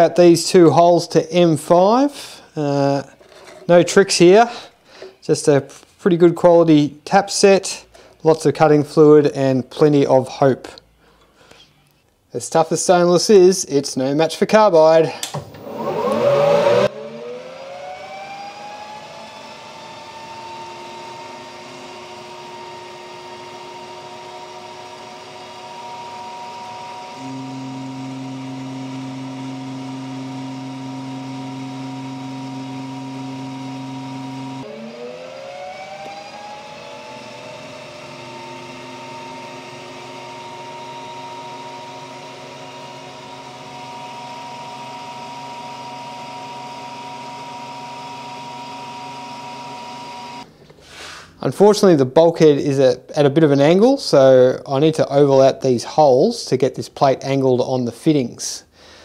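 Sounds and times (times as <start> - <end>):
metal lathe gear whine: 15.6 - 50.4
deep steady hum: 27.2 - 35.7.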